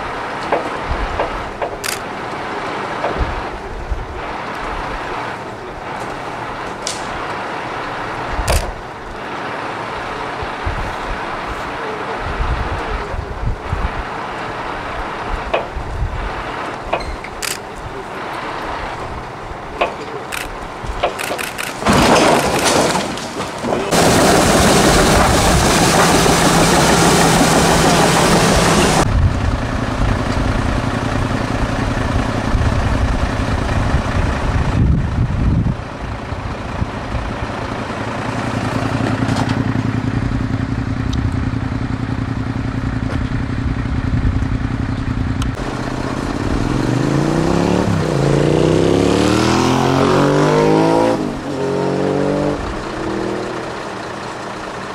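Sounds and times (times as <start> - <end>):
diesel engine running steadily: 0.0 - 54.9
excavator working: 0.0 - 54.9
vehicle passing by: 0.0 - 54.9.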